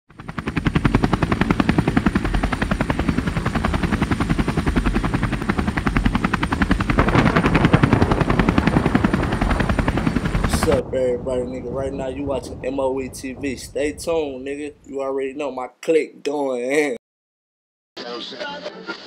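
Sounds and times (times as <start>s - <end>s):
helicopter rotor chopping: 0.1s - 14.7s.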